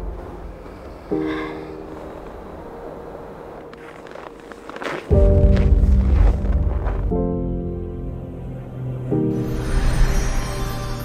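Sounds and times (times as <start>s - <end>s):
soft outdoor ambience: 0.0s - 11.0s.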